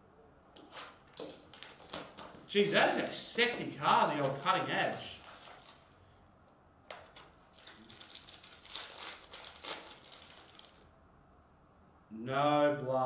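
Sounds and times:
cellophane wrapper crinkling: 0:00.6 - 0:10.9.

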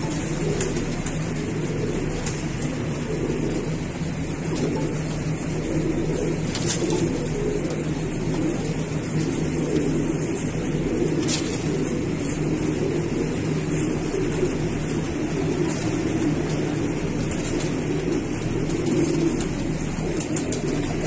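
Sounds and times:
pigeons cooing: 0:00.0 - 0:21.0
steady low hum: 0:00.0 - 0:21.0.

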